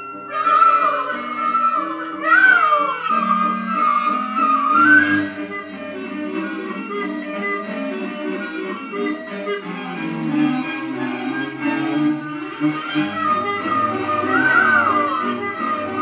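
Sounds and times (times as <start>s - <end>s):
orchestral film music: 0.0s - 16.0s.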